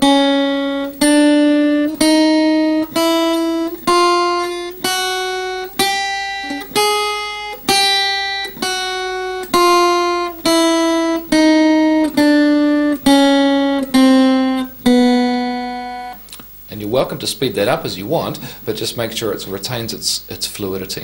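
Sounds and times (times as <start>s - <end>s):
acoustic guitar chromatic scale: 0.0s - 21.0s.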